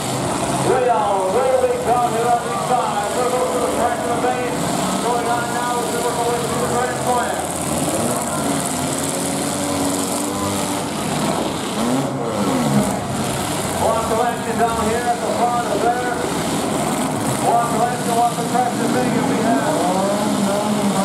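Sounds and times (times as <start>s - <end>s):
car engines revving: 0.0s - 21.0s.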